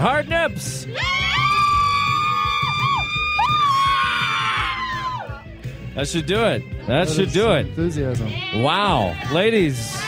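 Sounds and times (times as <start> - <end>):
background music: 0.0 - 10.0
woman screaming: 1.0 - 5.4.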